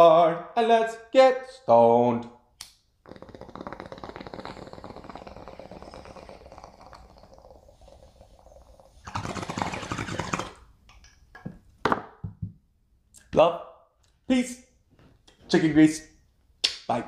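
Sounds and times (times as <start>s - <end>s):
bong water bubbling: 3.1s - 10.8s.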